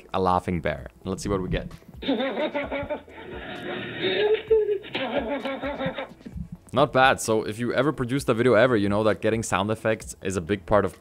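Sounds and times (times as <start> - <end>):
muffled laugh-like chuckling: 2.0 - 6.3.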